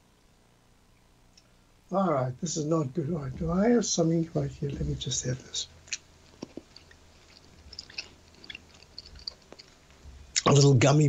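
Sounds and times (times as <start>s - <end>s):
man chewing: 5.8s - 10.5s.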